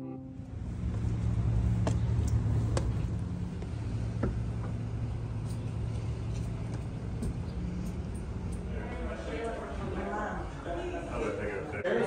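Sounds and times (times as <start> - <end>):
vehicle engine rumble: 0.0 - 11.1
footsteps on concrete steps: 1.8 - 4.8.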